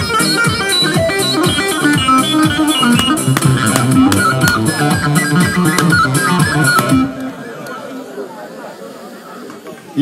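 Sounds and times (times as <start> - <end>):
music: 0.0 - 7.3
crowd chattering: 0.0 - 10.0.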